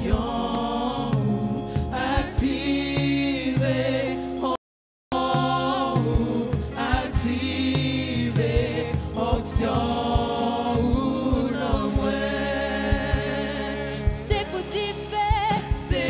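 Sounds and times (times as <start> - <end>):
congregation singing in chorus: 0.0 - 16.0
woman singing into a microphone: 12.7 - 16.0.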